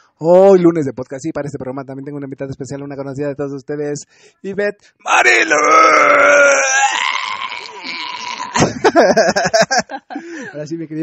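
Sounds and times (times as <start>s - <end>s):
drawn-out bleating cry: 5.1s - 8.7s
wavering vocal sounds: 5.1s - 8.8s.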